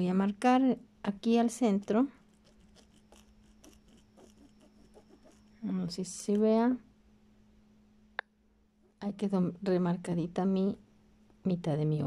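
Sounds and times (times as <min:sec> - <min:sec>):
low steady hum: 0:00.0 - 0:12.0
pencil scratching on cloth: 0:01.5 - 0:05.6.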